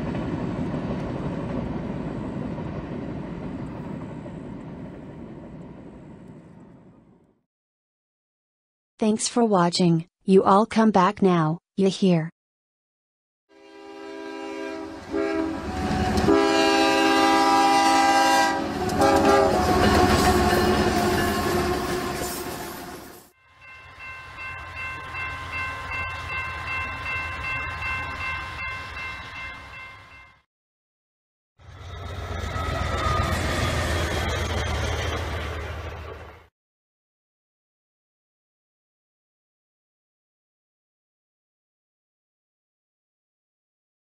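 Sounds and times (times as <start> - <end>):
train rumble: 0.0 - 7.3, 14.6 - 30.0, 31.6 - 36.5
high-pitched horn chord: 13.5 - 22.5
locomotive air horn blasts: 13.5 - 22.8.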